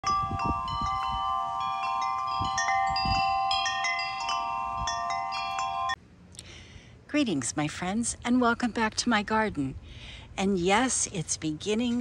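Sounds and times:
wind chimes ringing: 0:00.0 - 0:06.0.

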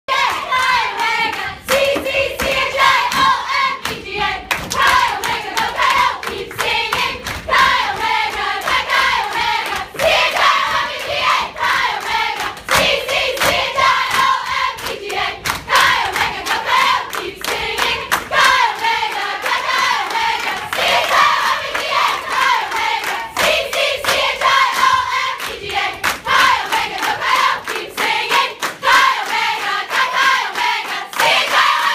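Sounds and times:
rhythmic hand claps: 0:00.1 - 0:31.9
women singing in unison: 0:00.1 - 0:31.9.

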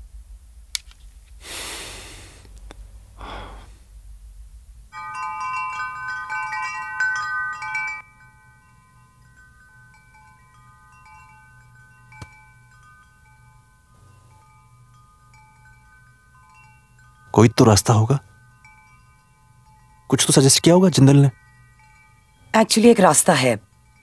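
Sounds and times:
chimes ringing: 0:05.0 - 0:24.0.

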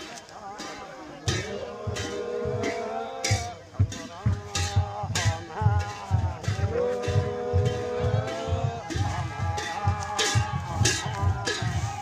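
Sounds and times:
cymbals clashing: 0:00.0 - 0:12.0
drum beating paired beats: 0:00.0 - 0:12.0
voices chanting: 0:00.0 - 0:12.0.

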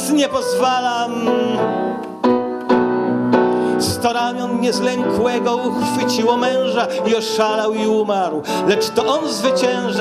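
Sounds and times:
grand piano chords: 0:00.0 - 0:10.0.

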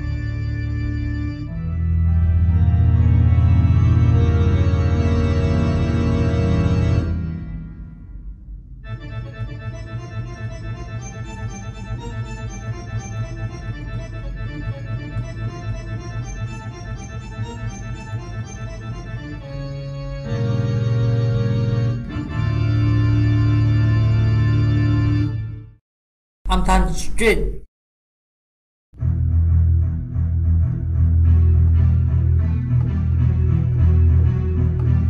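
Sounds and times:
organ chords: 0:00.0 - 0:25.7, 0:29.0 - 0:35.0.

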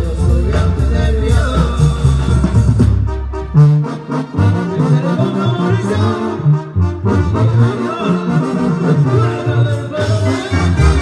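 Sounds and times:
brass band playing: 0:00.0 - 0:11.0
sousaphone bass notes: 0:00.0 - 0:11.0.

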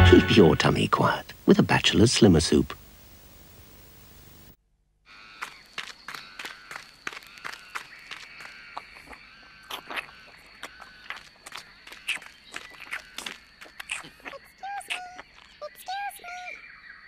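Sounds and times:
faint high whine: 0:00.0 - 0:04.6.

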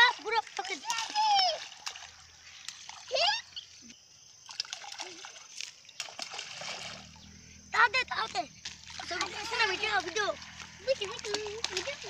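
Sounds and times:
objects splashing into water: 0:00.0 - 0:03.4, 0:04.4 - 0:07.2, 0:08.6 - 0:12.0
water washing: 0:00.0 - 0:03.9, 0:04.5 - 0:12.0.

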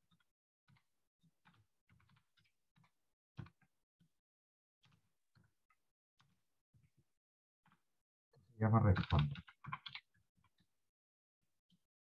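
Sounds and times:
faint keyboard typing: 0:08.7 - 0:10.7.

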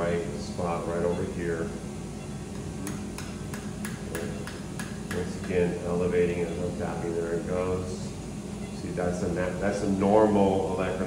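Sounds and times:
mallet tapping a chisel: 0:02.8 - 0:05.6.

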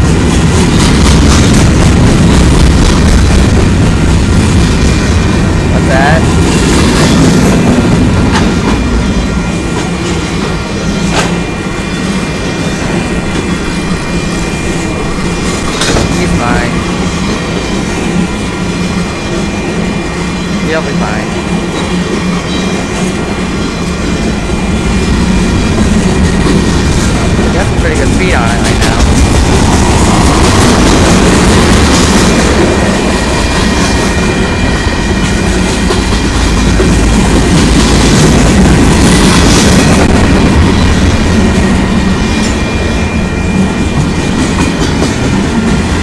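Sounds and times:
steel wheels rumbling on rails: 0:00.0 - 0:46.0.

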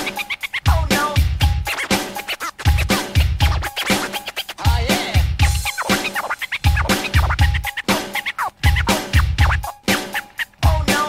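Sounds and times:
hip hop beat with bass kicks: 0:00.0 - 0:11.0
turntable scratching: 0:00.0 - 0:11.0.

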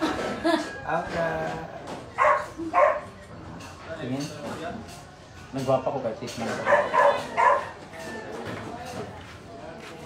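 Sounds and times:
background chatter: 0:00.0 - 0:10.0
dog barking: 0:02.2 - 0:03.1, 0:06.6 - 0:07.8.

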